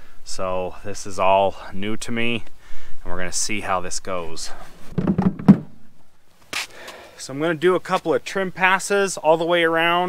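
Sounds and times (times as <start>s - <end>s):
handling knocks and thumps: 4.8s - 6.0s
short hiss: 6.5s - 7.2s.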